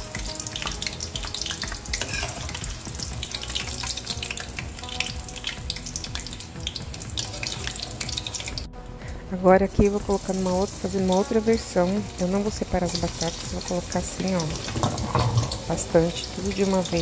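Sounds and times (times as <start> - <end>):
potatoes sizzling in hot oil: 0.0 - 8.7, 9.7 - 17.0.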